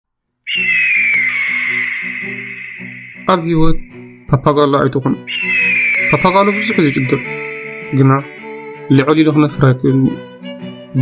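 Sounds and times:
bird of prey screaming: 0.5 - 4.3, 5.2 - 9.0
background music with low notes: 6.1 - 11.0.

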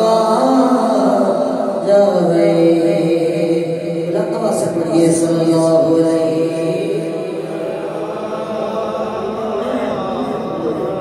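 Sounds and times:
man chanting: 0.0 - 11.0.

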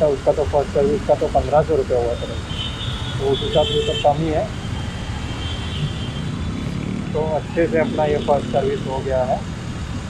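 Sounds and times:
motorcycle engine rumbling: 0.0 - 9.7
traffic: 0.0 - 10.0.

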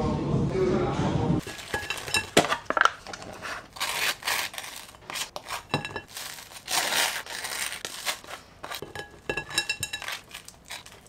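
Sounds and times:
knife clinking against dishes: 1.4 - 3.2, 5.4 - 6.1, 8.6 - 11.0.

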